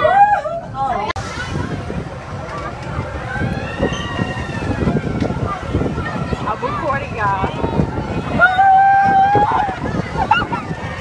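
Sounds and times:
ride car rumbling: 0:00.0 - 0:11.0
long rising and falling wail: 0:08.3 - 0:10.7.

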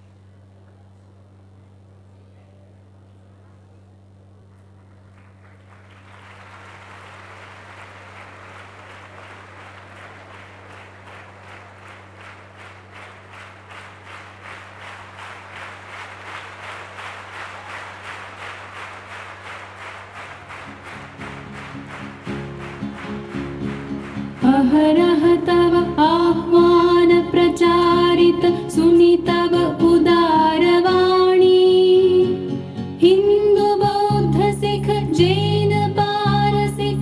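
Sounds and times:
audience clapping in unison: 0:04.9 - 0:28.2.

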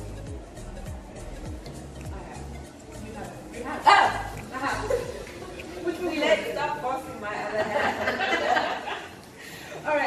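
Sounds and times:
women laughing: 0:04.6 - 0:05.7, 0:07.5 - 0:09.2.

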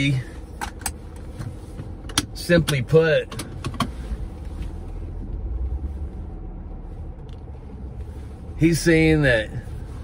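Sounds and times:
car low hum: 0:00.0 - 0:10.0
seat belt buckle clicks: 0:00.6 - 0:03.9.

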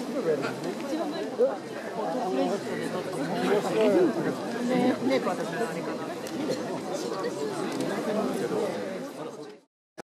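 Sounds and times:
crowd talking and calling out: 0:00.0 - 0:09.7.

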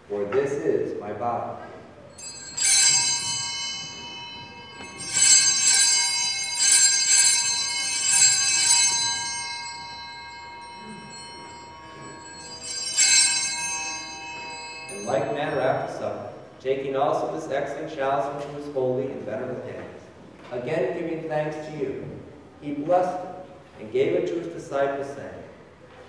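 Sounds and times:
altar bells ringing: 0:02.0 - 0:17.8.

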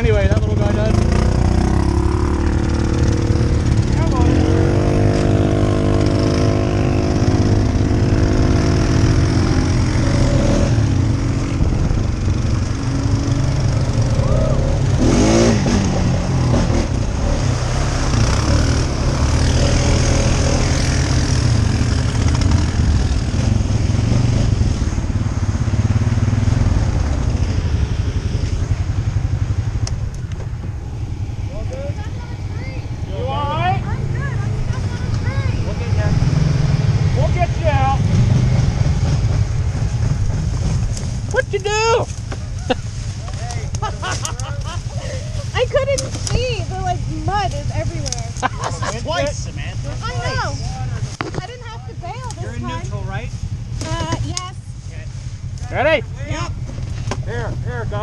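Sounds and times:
atv engine droning: 0:00.0 - 0:58.0.

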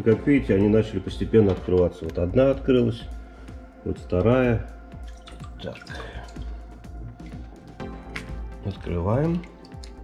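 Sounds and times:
water dripping into sink: 0:04.2 - 0:10.0.

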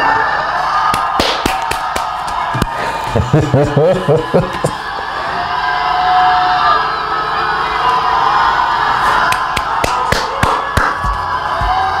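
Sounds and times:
concert crowd cheering: 0:00.0 - 0:12.0
sharp hand claps: 0:00.9 - 0:02.8, 0:09.3 - 0:11.2.

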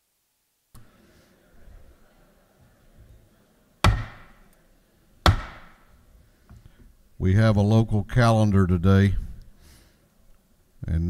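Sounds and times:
sharp knocks on wood: 0:03.8 - 0:04.4, 0:05.3 - 0:05.8.

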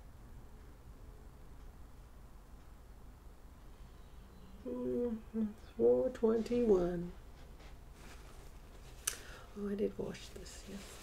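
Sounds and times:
woman humming: 0:04.6 - 0:05.8
woman speaking: 0:04.7 - 0:07.2, 0:09.6 - 0:11.0.

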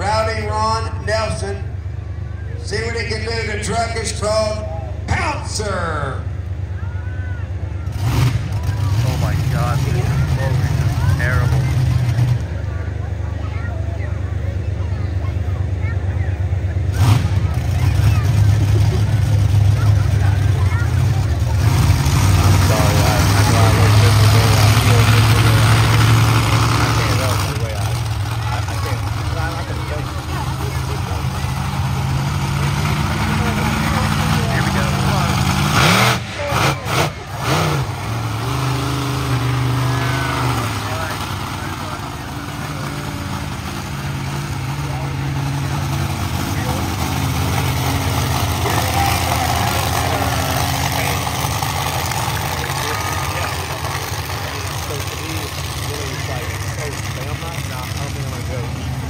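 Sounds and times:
crowd voices: 0:00.0 - 0:59.0
monster truck engine revving: 0:00.0 - 0:59.0.

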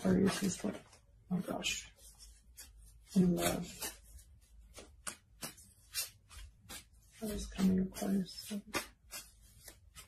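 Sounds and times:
cards flicking and rustling: 0:00.1 - 0:01.1, 0:02.2 - 0:10.0.

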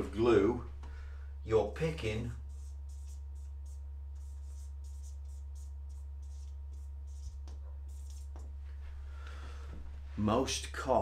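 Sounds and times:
steady low hum: 0:00.0 - 0:11.0
marker scratching on whiteboard: 0:02.4 - 0:08.6.

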